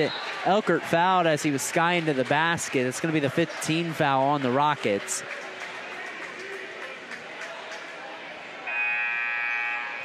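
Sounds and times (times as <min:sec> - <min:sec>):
murmur of crowd: 0:00.0 - 0:10.0
horn buzzing: 0:08.7 - 0:10.0.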